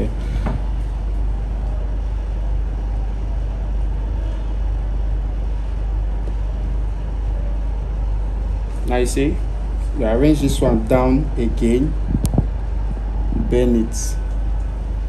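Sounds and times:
low machinery hum: 0:00.0 - 0:15.0.

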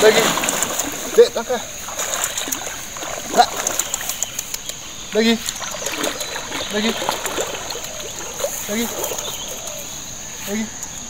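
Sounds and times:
rush of river water: 0:00.0 - 0:10.4
water splashing around wading man: 0:00.0 - 0:10.5.

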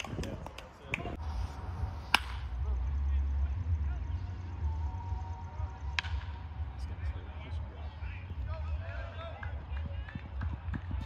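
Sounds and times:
spectators' voices: 0:00.0 - 0:11.0
steady low rumble: 0:00.0 - 0:11.0
bat cracking a baseball: 0:02.0 - 0:02.6, 0:05.9 - 0:06.5.

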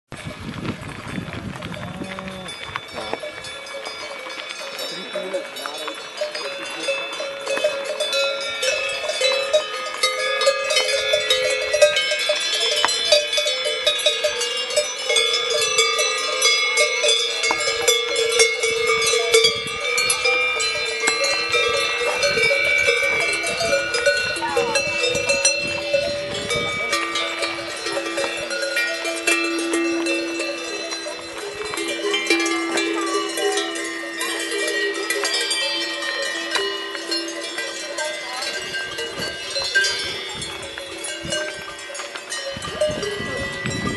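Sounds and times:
cowbells ringing: 0:00.1 - 0:43.9.

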